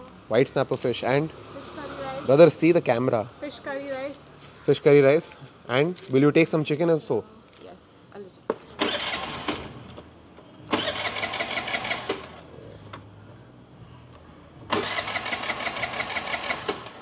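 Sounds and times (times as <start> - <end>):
scooter electric starter cranking: 8.8 - 9.9, 10.7 - 12.4, 14.7 - 17.0.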